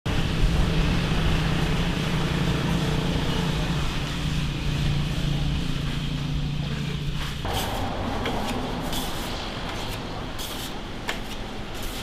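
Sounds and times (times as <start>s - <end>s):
engine humming: 0.1s - 12.0s
outdoor background noise: 0.1s - 12.0s.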